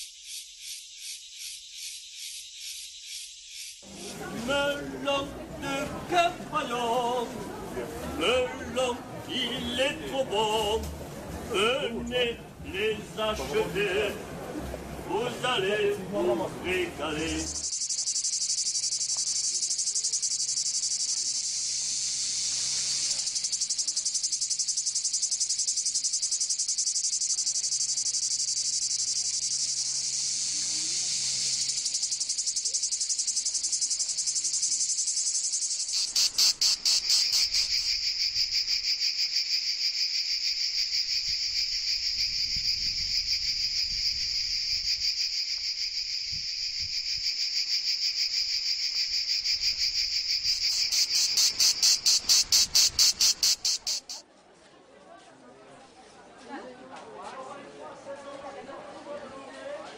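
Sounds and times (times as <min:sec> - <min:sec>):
insects chirring: 0:00.0 - 0:04.0, 0:17.0 - 0:54.2.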